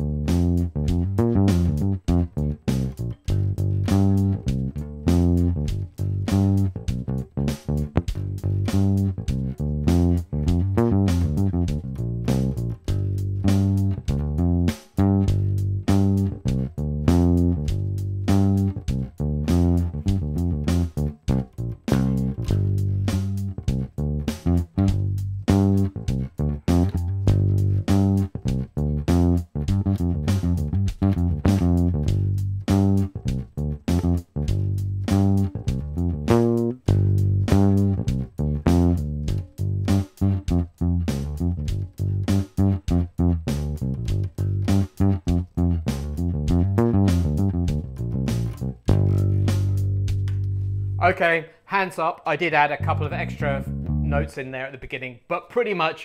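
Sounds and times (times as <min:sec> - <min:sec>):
bass guitar playing: 0:00.0 - 0:51.4, 0:52.3 - 0:54.6
pop drum track: 0:00.3 - 0:50.4.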